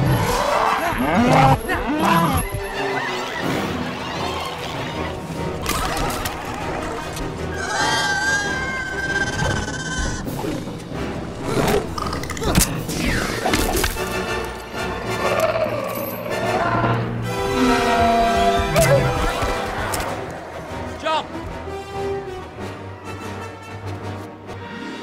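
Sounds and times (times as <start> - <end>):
dramatic orchestral music: 0.0 - 25.0
creature cries: 0.1 - 5.2, 5.8 - 10.3.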